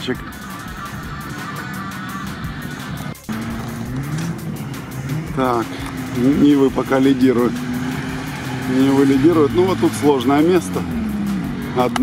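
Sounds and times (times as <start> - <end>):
background music: 0.0 - 12.0
engine revving: 0.0 - 12.0
off-road engines running: 0.0 - 12.0.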